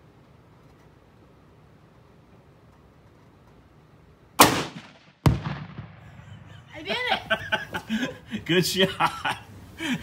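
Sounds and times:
target explosion boom: 4.4s - 6.2s
rifle shot: 4.4s - 6.3s.

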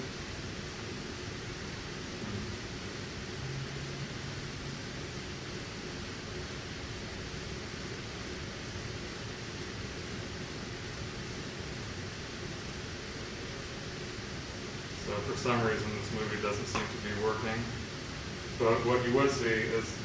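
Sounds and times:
recording hiss: 0.0s - 20.0s
room background noise: 0.0s - 20.0s.

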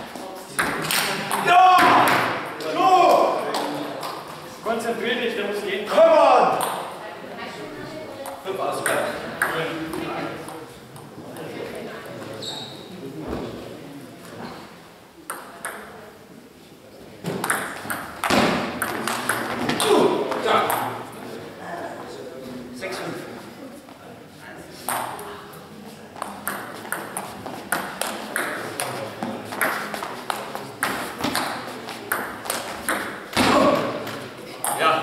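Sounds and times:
voices talking in echoing hall: 0.0s - 35.0s.

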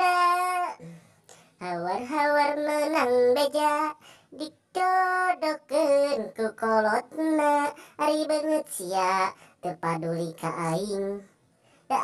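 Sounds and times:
person singing unaccompanied: 0.0s - 1.0s, 1.6s - 11.3s.

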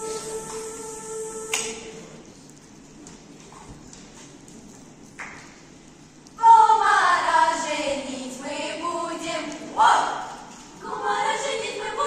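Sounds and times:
choir and piano chord: 0.0s - 2.1s.

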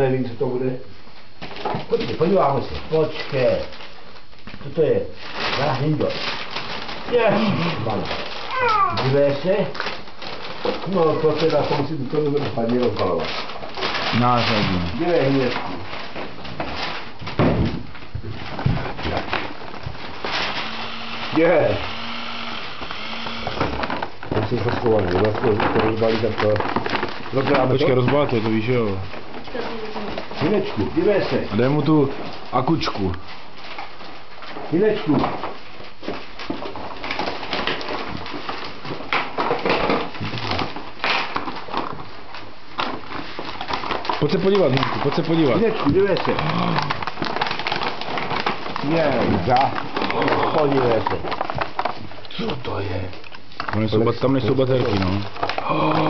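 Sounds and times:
packaging rustling and knocking: 1.2s - 56.0s.

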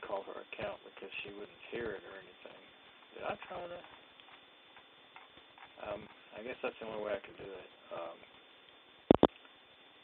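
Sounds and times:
static hiss and crackle: 0.0s - 10.0s.

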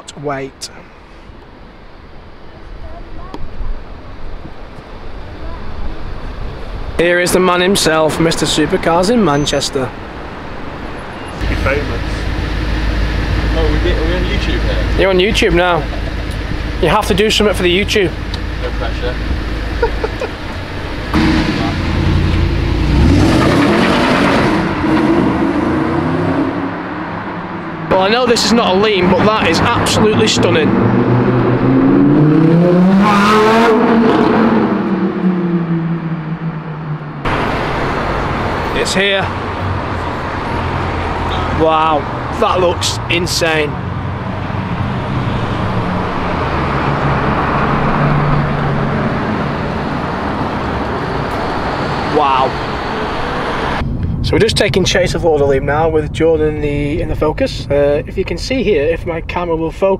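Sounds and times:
road noise: 0.0s - 59.9s
car engine revving hard: 11.4s - 53.8s.

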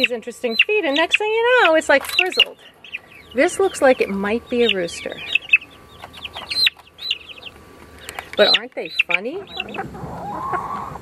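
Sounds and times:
young chicken peeping: 0.0s - 11.0s.

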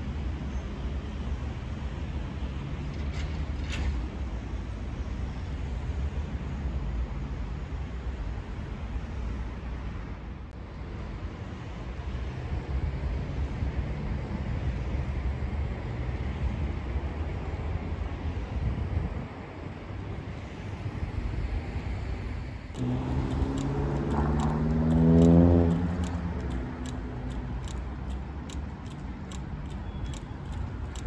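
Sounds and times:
wind: 0.0s - 31.0s
traffic rumble: 19.7s - 31.0s
car accelerating past: 22.8s - 27.9s
light regular clicks: 22.8s - 31.0s.

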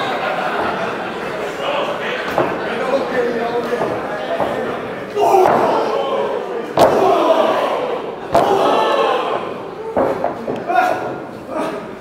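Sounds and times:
crowd shouting and cheering: 0.0s - 12.0s
loud impact slam: 6.8s - 7.2s, 8.3s - 8.8s.

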